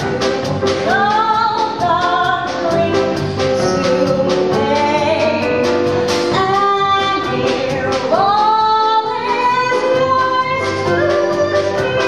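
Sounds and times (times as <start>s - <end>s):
live band playing: 0.0s - 12.0s
woman singing: 0.8s - 12.0s.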